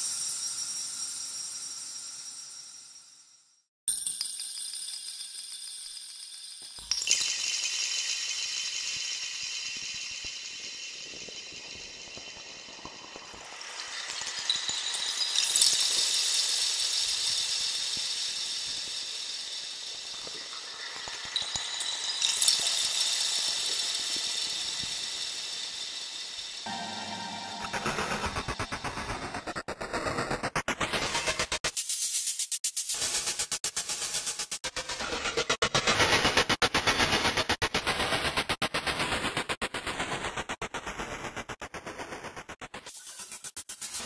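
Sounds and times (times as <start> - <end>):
wind chimes shimmer: 4.0 - 17.6, 21.3 - 28.8.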